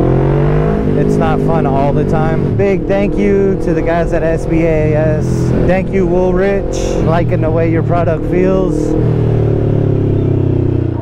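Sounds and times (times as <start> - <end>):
motorcycle engine at cruise: 0.0 - 11.0.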